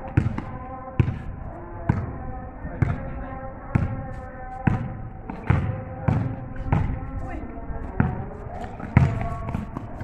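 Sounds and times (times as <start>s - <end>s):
basketball bouncing on pavement: 0.0s - 7.2s, 7.8s - 10.0s.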